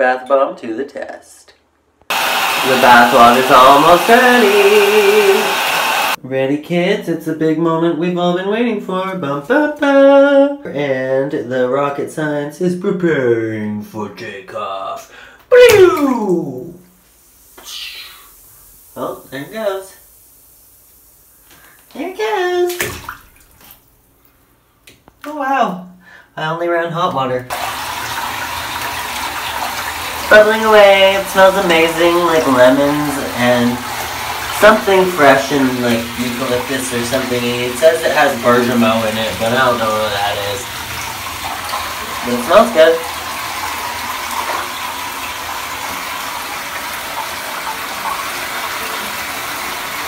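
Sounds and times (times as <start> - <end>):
bath bomb fizzing in water: 17.0 - 23.8, 27.5 - 50.0.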